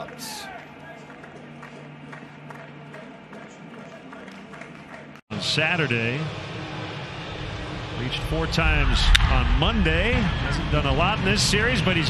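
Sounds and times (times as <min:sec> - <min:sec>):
crowd noise: 0:00.0 - 0:12.0
faint music: 0:00.0 - 0:12.0
low hum: 0:05.3 - 0:12.0.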